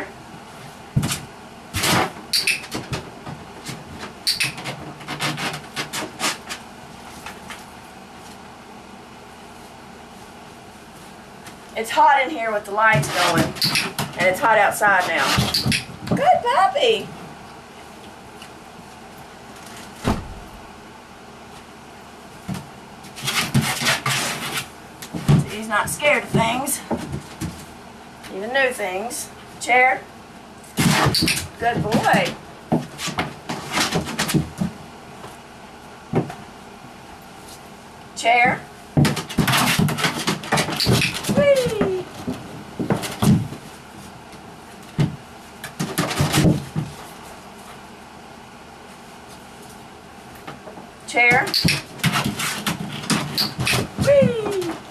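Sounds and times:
scraping knocks and rustles: 0.6s - 8.4s, 22.4s - 27.8s, 30.7s - 35.4s, 39.0s - 47.8s, 51.6s - 54.9s.

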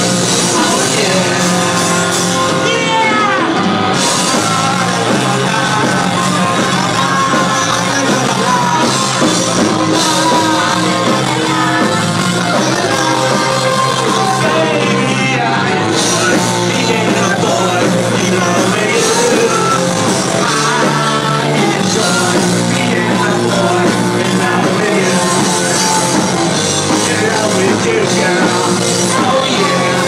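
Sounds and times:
drums: 0.0s - 30.0s
electric guitars: 0.0s - 30.0s
singer yelling: 0.0s - 30.0s.

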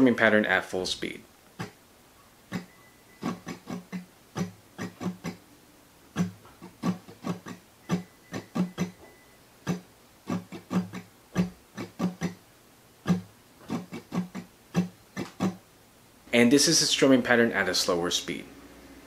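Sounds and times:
acoustic guitar strumming: 1.6s - 1.8s, 2.5s - 15.7s.

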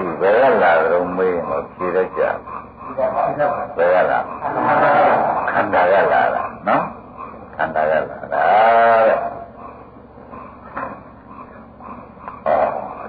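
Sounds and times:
man speaking: 0.0s - 7.0s, 7.6s - 9.4s.

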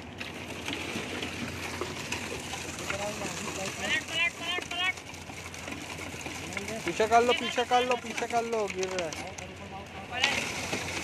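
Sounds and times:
concrete vibrator humming: 0.0s - 11.0s.

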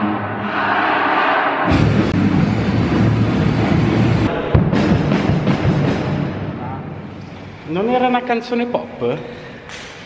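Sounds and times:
drums and bass rumble: 1.7s - 7.0s.

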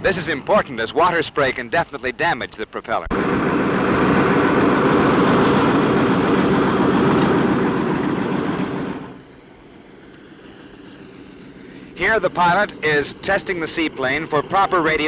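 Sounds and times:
seaplane engine and propeller drone: 0.0s - 15.0s.

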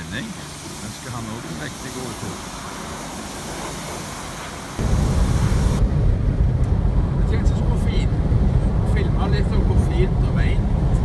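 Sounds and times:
pressure washer spraying water: 0.0s - 5.8s.

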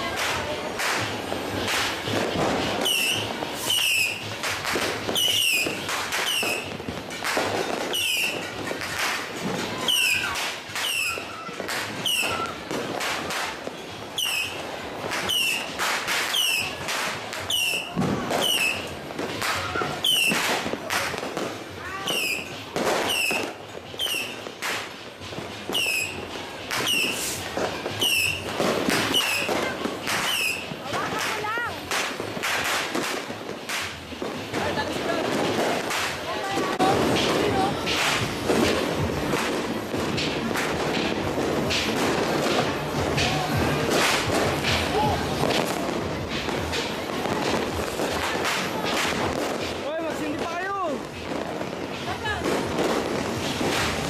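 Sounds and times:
firecrackers cracking and popping: 0.0s - 54.0s
firework whistles: 0.8s - 50.4s.

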